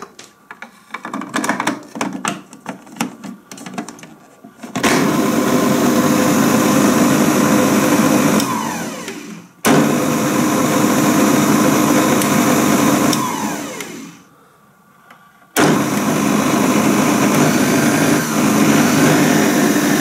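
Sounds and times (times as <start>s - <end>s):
food processor motor running: 4.8s - 14.2s, 15.6s - 20.0s.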